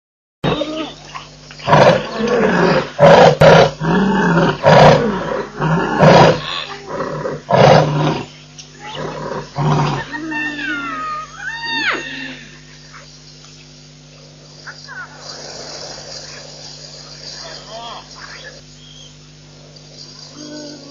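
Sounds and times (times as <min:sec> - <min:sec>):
lion roaring and grunting: 0:01.6 - 0:08.3, 0:08.9 - 0:10.3
thin gliding whistle-like calls: 0:17.5 - 0:19.2.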